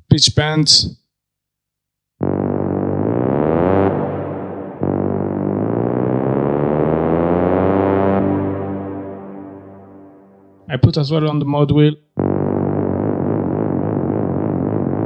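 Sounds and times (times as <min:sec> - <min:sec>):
buzzy synth horn notes: 0:02.2 - 0:11.4, 0:12.1 - 0:15.0.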